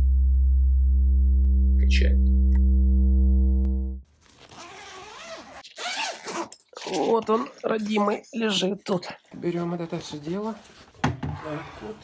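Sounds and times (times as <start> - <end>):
sustained sub-bass note: 0.0 - 4.0
bag unzipping: 4.2 - 7.2.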